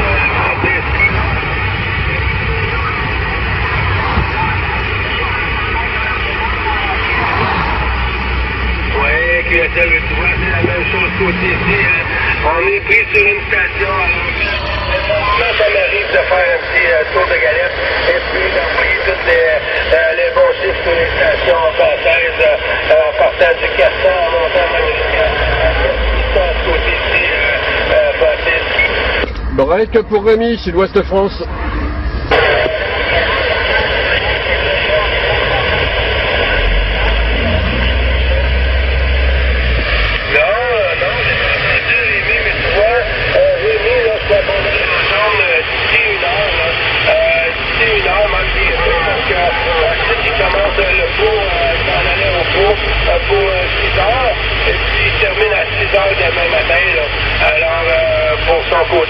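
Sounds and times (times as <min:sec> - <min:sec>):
garbled radio voices: 0:00.0 - 0:59.0
radio static hiss: 0:00.0 - 0:59.0.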